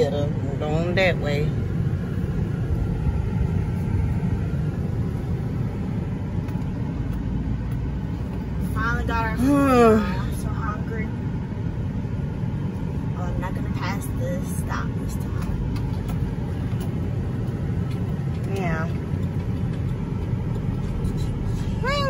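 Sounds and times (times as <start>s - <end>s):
truck engine and road noise: 0.0s - 22.0s.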